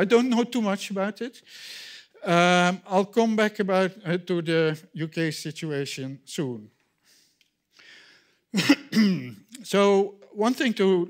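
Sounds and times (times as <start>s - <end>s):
man clearing his throat: 8.5s - 9.5s.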